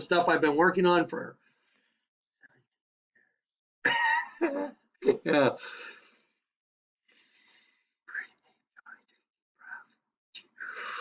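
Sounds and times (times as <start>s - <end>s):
man whispering breathily: 8.1s - 11.0s.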